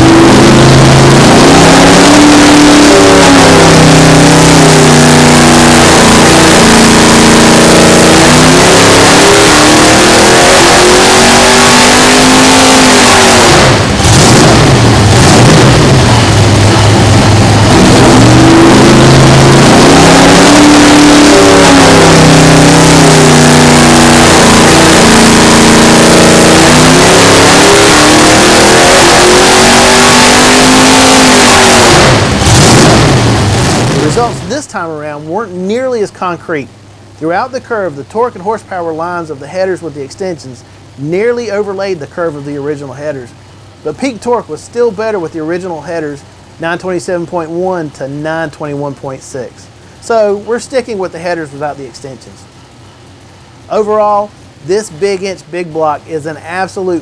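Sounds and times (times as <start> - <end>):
engine revving at full throttle: 0.0 - 36.1, 50.0 - 57.0.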